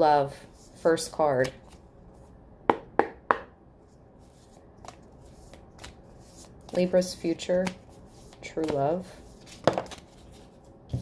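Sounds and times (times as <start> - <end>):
cards being shuffled: 4.2 - 11.0.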